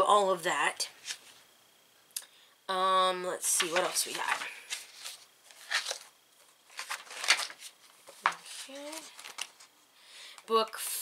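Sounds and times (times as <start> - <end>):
paper pages rustling: 3.4 - 9.7.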